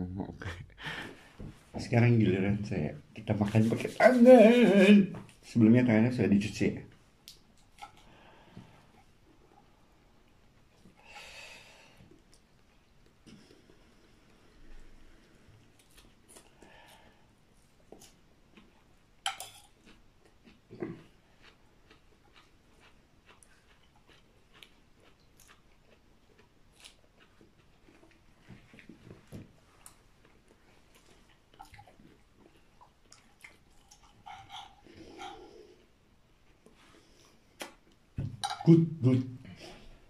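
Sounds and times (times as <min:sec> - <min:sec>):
faint chewing: 0:06.9 - 0:11.0, 0:12.0 - 0:38.5.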